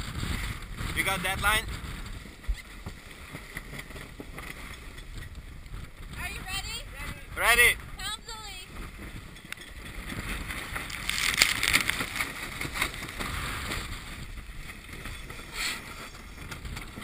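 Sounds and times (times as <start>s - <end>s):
water rushing along hull: 0.0s - 17.0s
wind buffeting microphone: 0.0s - 17.0s.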